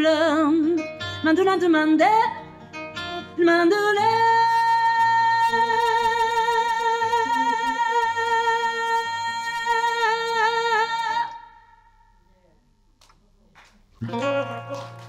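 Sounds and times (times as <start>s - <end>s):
woman singing: 0.0s - 2.4s, 3.2s - 11.6s
plucked acoustic guitar: 0.0s - 9.8s, 14.0s - 15.0s.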